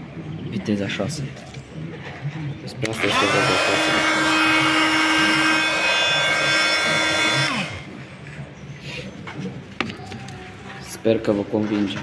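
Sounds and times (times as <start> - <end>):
oscillating tool whining: 3.0 - 8.0.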